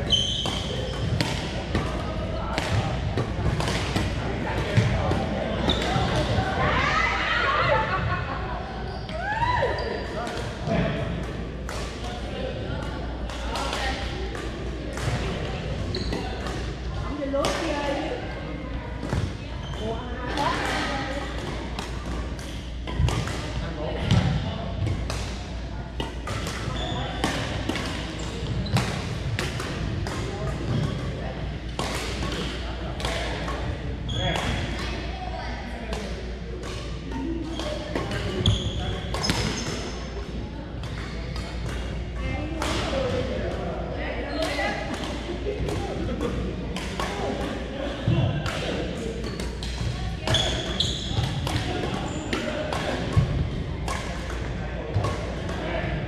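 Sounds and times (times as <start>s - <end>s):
voices in echoing hall: 0.0s - 56.0s
rackets hitting shuttlecock: 0.1s - 6.4s, 20.3s - 35.1s, 35.9s - 40.2s, 40.8s - 43.5s, 44.4s - 56.0s.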